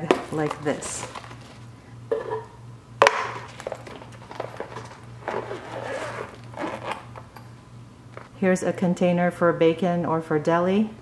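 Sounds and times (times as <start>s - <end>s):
lunch bag rustling and scraping: 0.0s - 2.4s, 3.4s - 7.2s.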